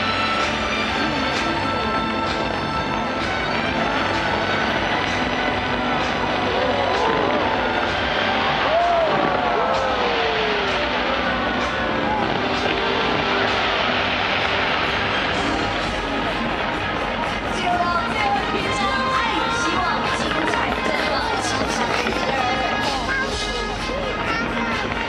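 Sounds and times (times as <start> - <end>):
fireworks bangs and crackle: 0.0 - 25.0
crowd shouting and whooping: 6.4 - 13.8.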